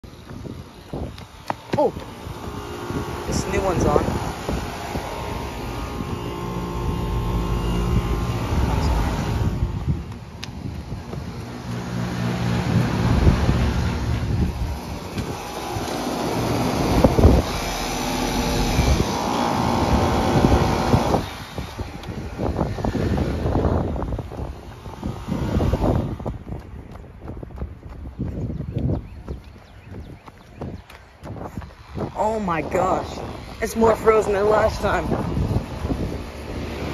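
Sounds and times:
air conditioner units humming: 0.0s - 26.8s.

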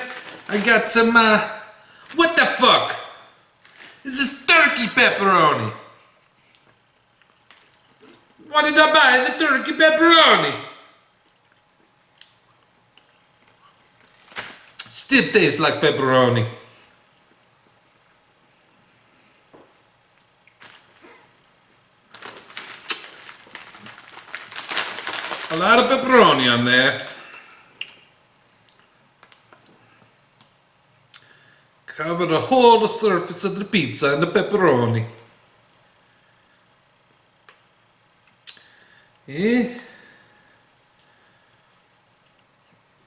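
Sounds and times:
plastic package crinkling: 0.0s - 1.0s, 3.6s - 4.1s, 6.6s - 8.2s, 13.4s - 14.9s, 20.5s - 21.3s, 22.0s - 28.1s, 29.2s - 29.6s.

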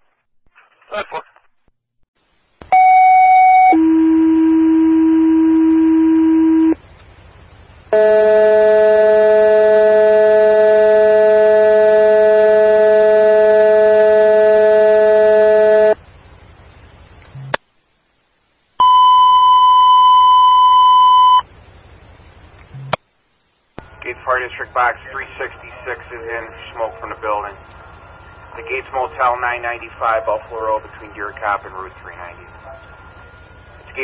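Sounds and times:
dispatcher speaking over radio: 23.9s - 27.6s, 28.5s - 32.8s.

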